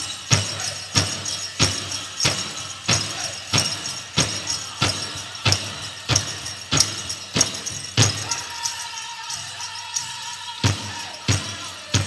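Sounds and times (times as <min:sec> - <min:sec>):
bells jingling: 0:00.0 - 0:12.0.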